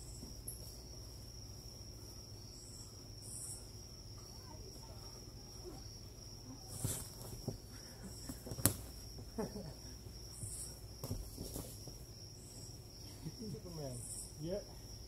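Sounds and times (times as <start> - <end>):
cricket chorus: 0.0 - 15.0
boxing gloves smacking: 8.3 - 9.0.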